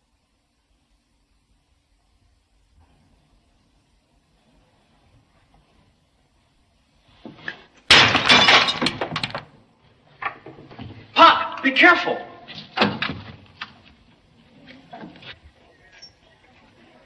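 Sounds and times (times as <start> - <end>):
glass shattering: 7.9 - 9.4.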